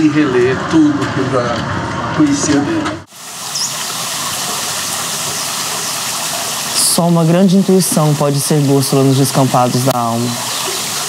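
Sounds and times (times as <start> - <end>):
flowing water: 2.2 - 11.0.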